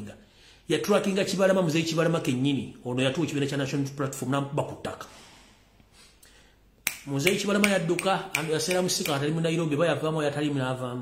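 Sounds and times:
finger snap: 6.8s - 9.3s.

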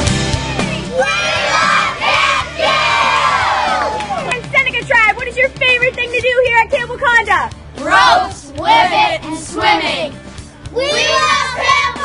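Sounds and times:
children shouting together: 0.9s - 4.0s, 10.8s - 12.0s.

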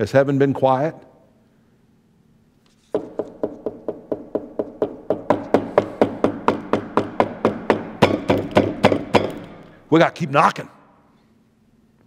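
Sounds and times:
knuckles knocking on wood: 3.0s - 9.5s.

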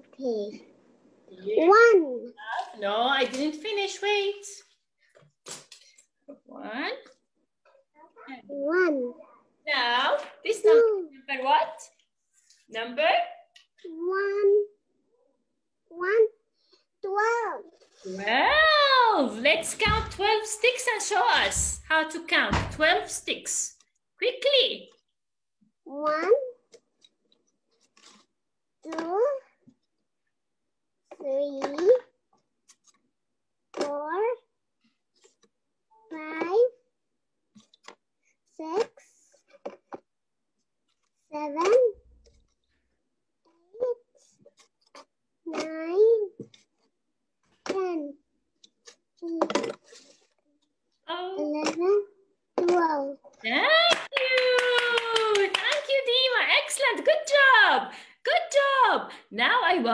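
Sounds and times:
rapid hand clapping: 53.7s - 56.0s.

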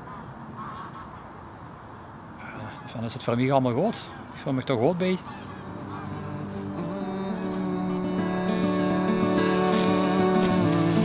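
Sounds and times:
geese honking: 0.0s - 1.3s, 4.0s - 11.0s
low steady hiss: 0.0s - 11.0s.

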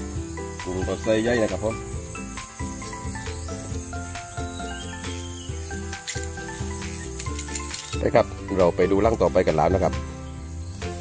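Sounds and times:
background music with bass line: 0.0s - 11.0s
high-pitched insect drone: 0.0s - 11.0s.

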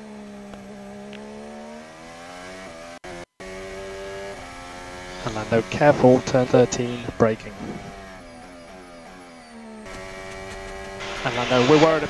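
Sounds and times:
race car engine over radio: 0.1s - 12.0s.

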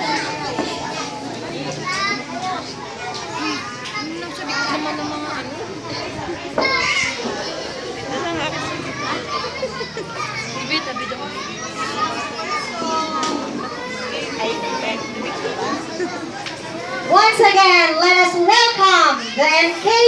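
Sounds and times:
adults talking: 0.0s - 20.0s
young children chattering: 0.0s - 20.0s.

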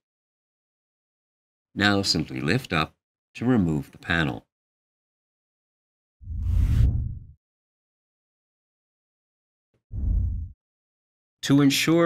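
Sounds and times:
whoosh with deep rumble: 6.2s - 7.4s, 9.9s - 10.6s.

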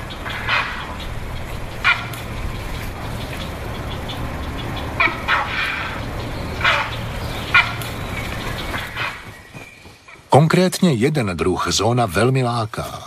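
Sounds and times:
heron calling: 0.0s - 10.5s
steady low hum: 0.0s - 11.0s.

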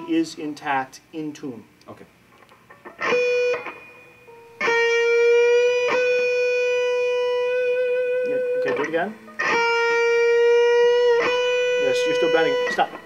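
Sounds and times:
electric guitar note ringing: 2.7s - 13.0s.

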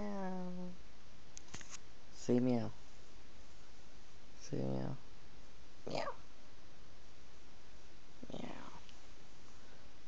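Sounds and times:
person whispering meow: 0.0s - 0.8s.

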